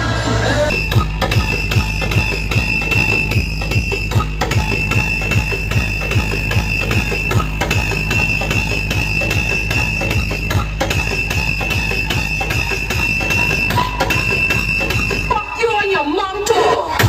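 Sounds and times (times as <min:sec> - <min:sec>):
loud dj music with bass beat: 0:00.0 - 0:17.0
steady high-pitched tone: 0:00.7 - 0:16.0.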